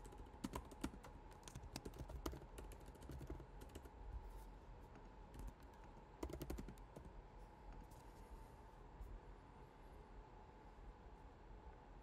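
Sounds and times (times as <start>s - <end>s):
computer keyboard typing: 0.0s - 4.0s, 5.3s - 7.2s.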